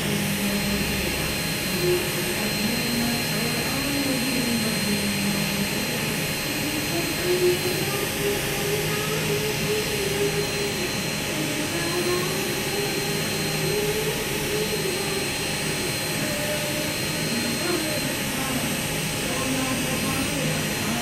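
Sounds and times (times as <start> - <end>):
electric micromotor whirring: 0.0 - 21.0.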